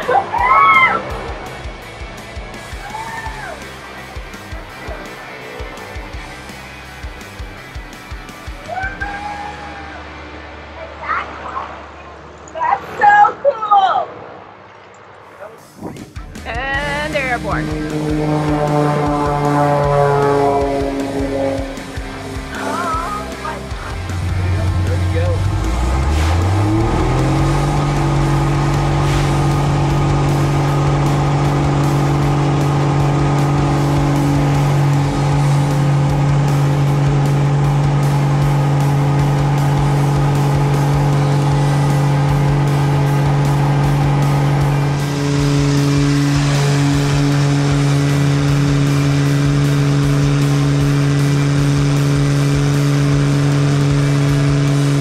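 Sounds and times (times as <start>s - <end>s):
propeller plane engine: 0.0s - 9.4s, 14.1s - 55.0s.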